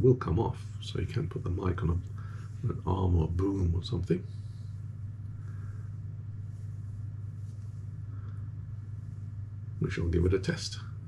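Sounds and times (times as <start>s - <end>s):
low background hum: 0.0s - 11.0s
faint soft rustles: 0.3s - 11.0s.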